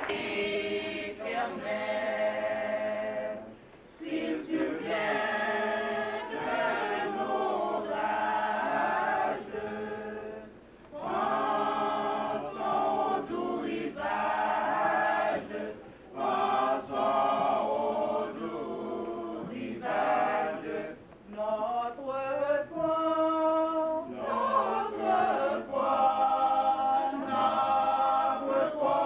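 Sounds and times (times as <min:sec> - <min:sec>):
choir singing a cappella: 0:00.0 - 0:29.0.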